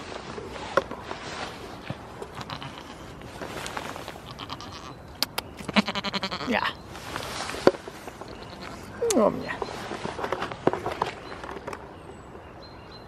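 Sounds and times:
goat bleating: 2.2s - 3.2s, 4.2s - 5.0s, 5.7s - 6.8s, 8.3s - 9.1s.

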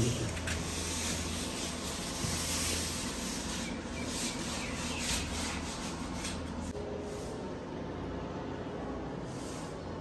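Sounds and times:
brush sweeping plastic mat: 0.0s - 7.4s.

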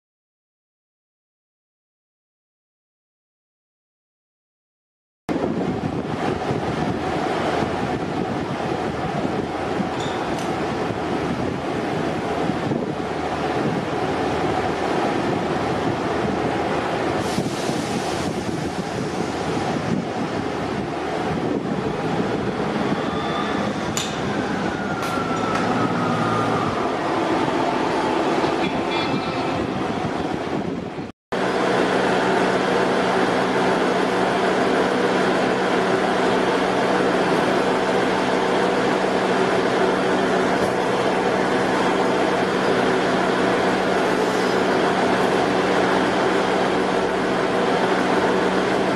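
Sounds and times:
train engine humming: 5.3s - 48.9s
diesel train idling: 5.6s - 30.8s, 31.4s - 48.9s
falling squeal: 22.7s - 26.9s.

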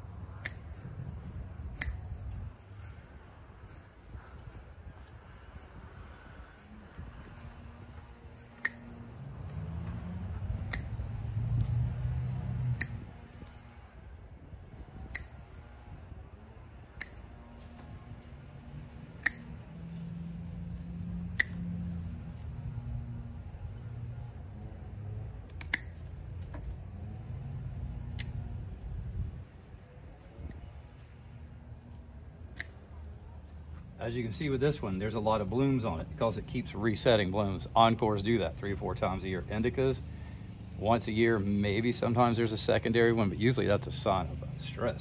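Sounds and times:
low rumble: 0.0s - 38.2s
pruning snips clicking: 0.2s - 3.1s, 8.2s - 13.9s, 14.9s - 16.0s, 16.8s - 22.3s, 25.4s - 26.8s, 27.4s - 28.7s, 30.4s - 31.0s, 32.5s - 33.1s.

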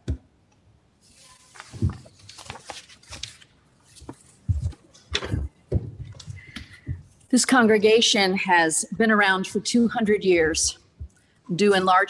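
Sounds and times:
hands handling wooden lectern: 1.2s - 7.2s
footsteps: 3.9s - 7.2s.

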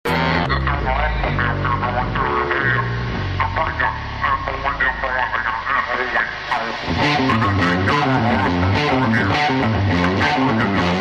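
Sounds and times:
indistinct voices talking: 0.1s - 11.0s
music: 0.1s - 11.0s.

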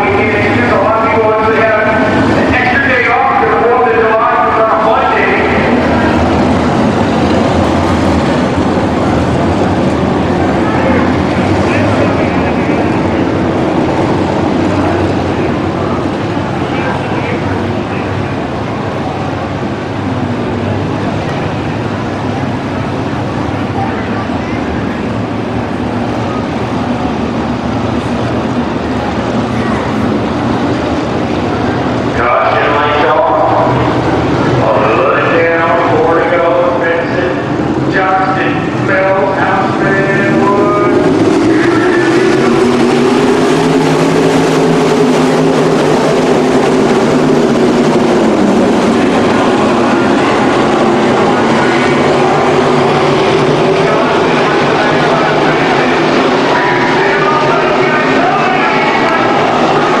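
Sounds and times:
race car engines at high revs: 19.4s - 60.0s.

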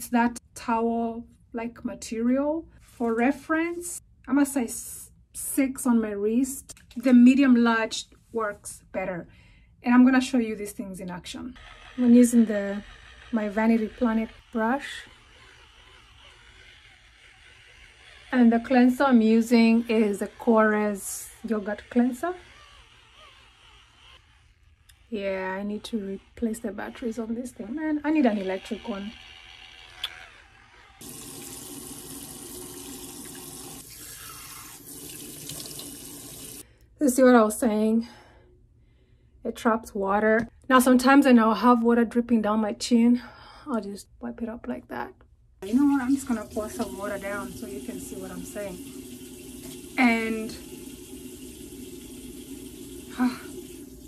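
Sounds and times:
cleansing brush motor whirring: 11.2s - 36.6s, 45.6s - 54.0s.

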